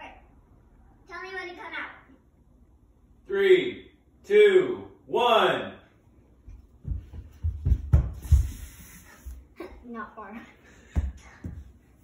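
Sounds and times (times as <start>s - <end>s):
child running in socks on wood: 6.5s - 9.4s.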